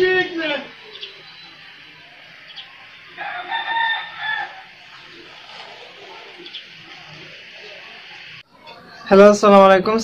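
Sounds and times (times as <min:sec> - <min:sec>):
background hiss: 0:00.0 - 0:08.4.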